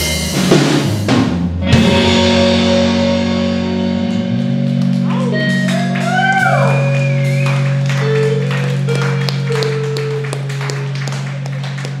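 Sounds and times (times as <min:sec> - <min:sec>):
drum and cymbal hits: 0:00.0 - 0:03.8
live band electric guitar and bass: 0:00.0 - 0:12.0
high gliding guitar tones: 0:01.6 - 0:12.0.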